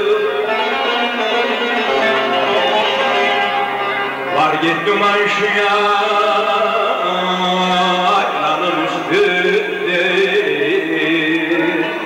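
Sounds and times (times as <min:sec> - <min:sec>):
long-necked lute folk melody: 0:00.0 - 0:12.0.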